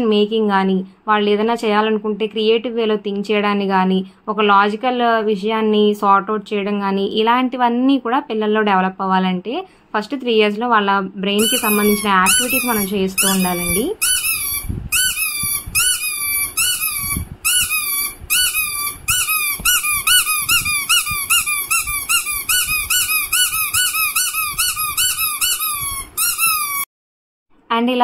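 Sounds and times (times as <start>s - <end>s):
squeaky toy ball squeaking: 11.4s - 26.9s.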